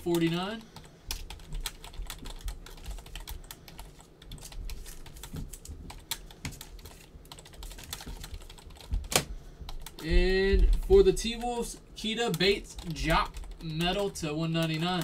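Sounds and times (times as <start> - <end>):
computer keyboard typing: 0.0 - 15.0.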